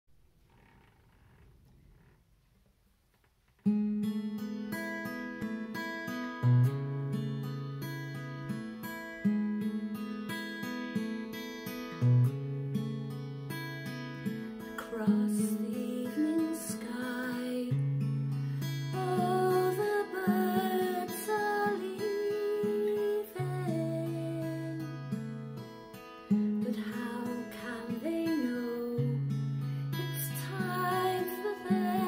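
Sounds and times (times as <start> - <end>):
acoustic guitar fingerpicking: 3.6 - 32.0.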